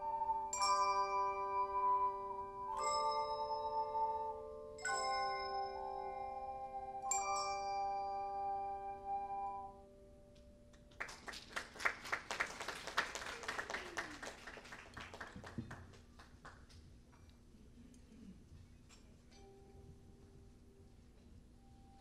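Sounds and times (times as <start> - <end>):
hand chimes and ocarinas chords: 0.0 - 10.3
hand clapping: 10.7 - 16.8.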